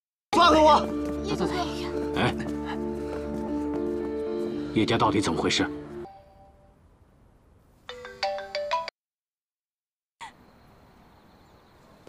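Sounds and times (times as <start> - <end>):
mobile phone ringtone: 7.9 - 8.9.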